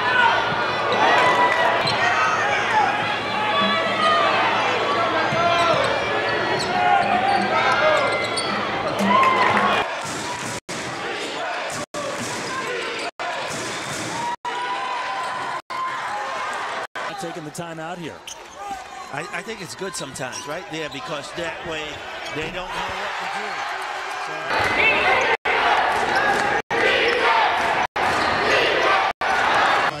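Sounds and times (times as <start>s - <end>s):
crowd voices: 0.0s - 30.0s
shoes squeaking: 18.2s - 21.3s.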